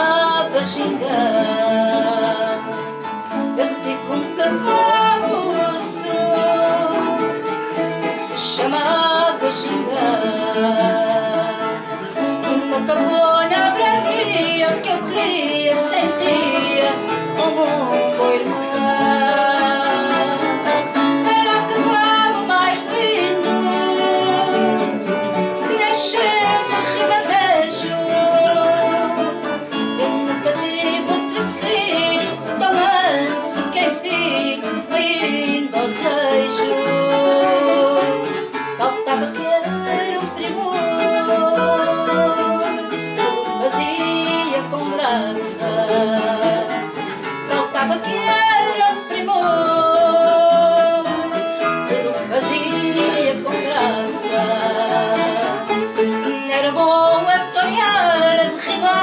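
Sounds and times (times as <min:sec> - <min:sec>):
acoustic guitar: 0:00.0 - 0:59.0
woman singing: 0:00.0 - 0:59.0.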